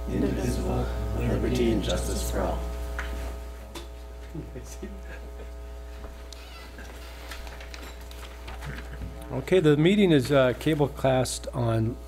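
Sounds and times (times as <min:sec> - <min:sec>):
electrical hum: 0:00.0 - 0:12.0
chair creaks: 0:06.3 - 0:09.2.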